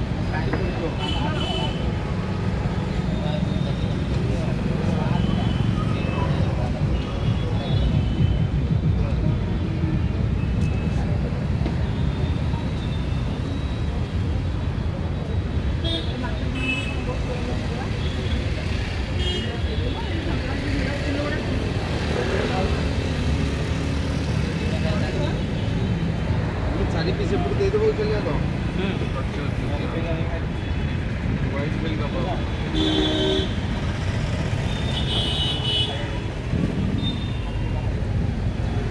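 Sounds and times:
traffic rumble: 0.0 - 38.9.

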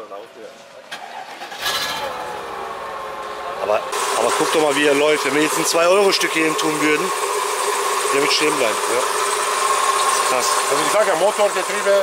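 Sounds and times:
car engine starting and idling: 0.8 - 12.0.

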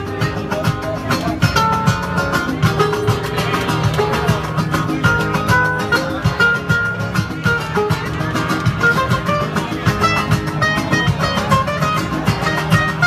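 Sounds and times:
flamenco guitar strumming: 0.0 - 13.0.

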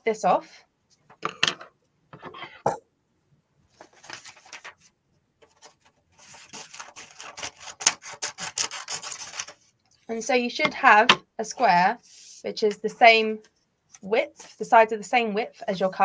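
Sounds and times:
paper being handled: 3.8 - 9.7
scissors cutting paper: 6.2 - 9.6.

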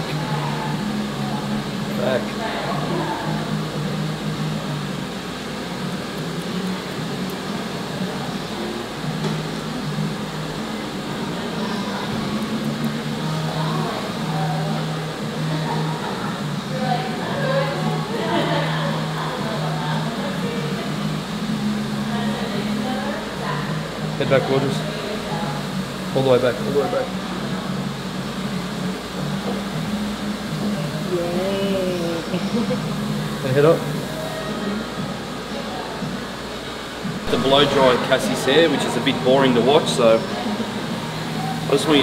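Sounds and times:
background music with bass: 0.0 - 35.5, 36.1 - 42.0
steady room hum: 0.0 - 42.0
indistinct voices: 30.6 - 42.0.

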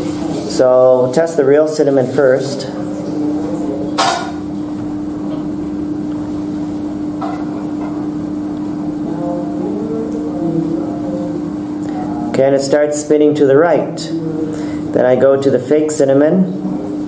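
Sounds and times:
steady single-tone hum: 0.0 - 17.0.

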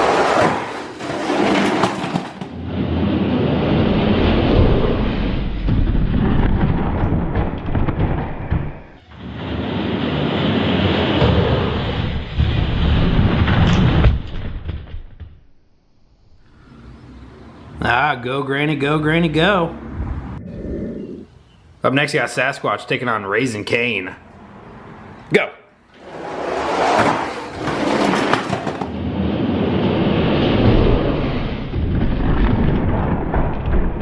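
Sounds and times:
plastic wheels rattling on track: 1.0 - 2.5, 27.5 - 29.0.

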